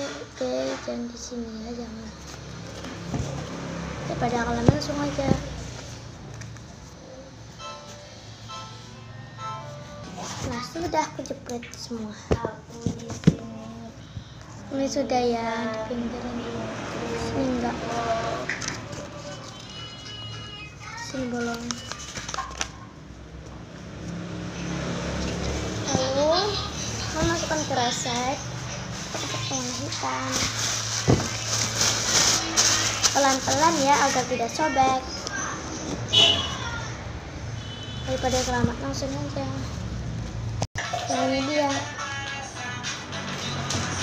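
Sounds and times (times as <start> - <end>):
vehicle engine humming: 1.3 - 11.2, 22.8 - 40.7.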